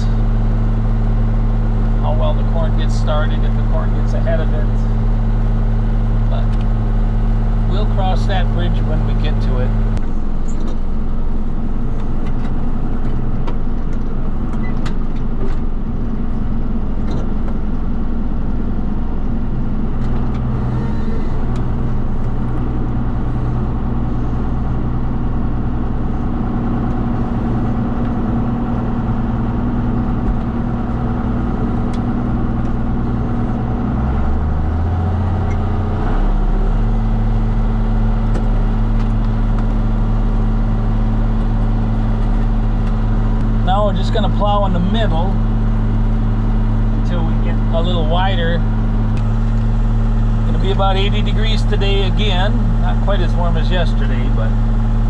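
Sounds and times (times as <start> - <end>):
tractor diesel engine under load: 0.0 - 55.0.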